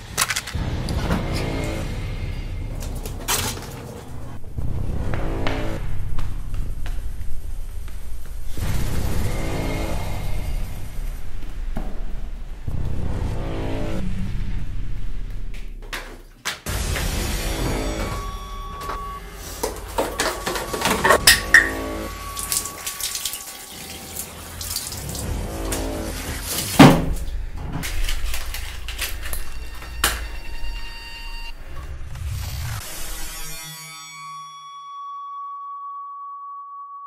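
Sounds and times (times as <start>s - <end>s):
deep rumble: 4.0s - 16.0s.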